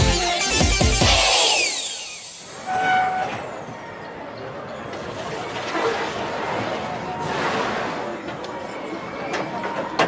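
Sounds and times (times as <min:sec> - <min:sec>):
ride train rushing along track: 0:00.0 - 0:10.0
train horn toot: 0:02.6 - 0:03.6.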